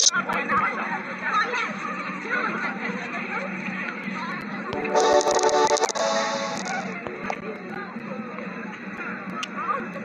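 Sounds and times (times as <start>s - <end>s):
music: 4.6s - 7.5s.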